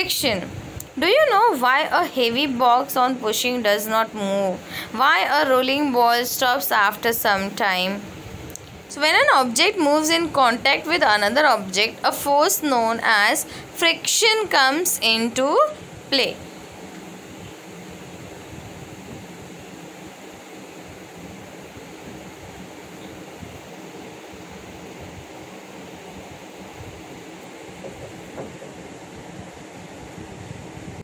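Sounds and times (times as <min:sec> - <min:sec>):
continuous room hiss: 0:00.0 - 0:31.0.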